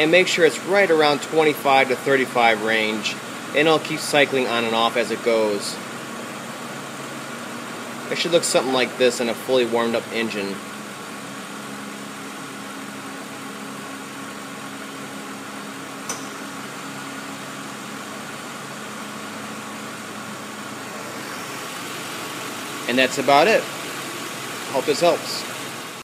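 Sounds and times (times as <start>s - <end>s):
short click: 16.0s - 16.4s.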